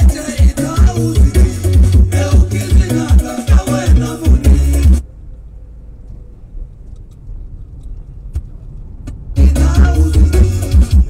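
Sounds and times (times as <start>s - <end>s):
music with strong bass beat: 0.0s - 5.0s, 9.4s - 11.0s
car cabin rumble: 4.3s - 11.0s.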